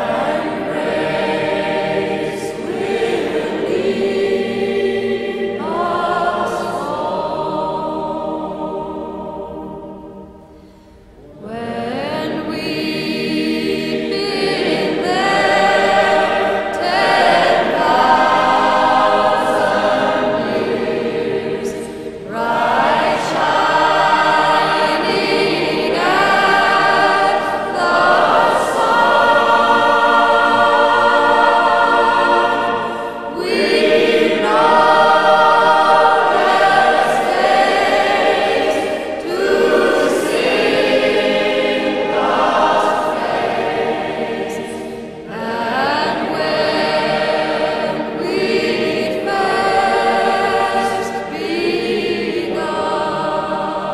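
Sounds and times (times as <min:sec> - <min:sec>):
choir singing: 0:00.0 - 0:53.9.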